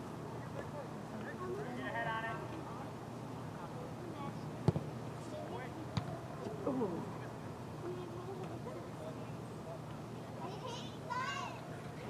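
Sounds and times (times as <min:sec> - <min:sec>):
soccer ball kick thuds: 0:04.6 - 0:04.9.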